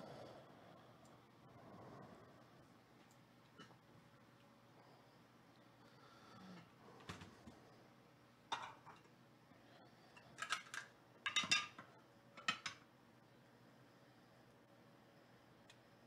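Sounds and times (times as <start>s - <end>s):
small objects clicking and clattering: 10.4s - 11.8s.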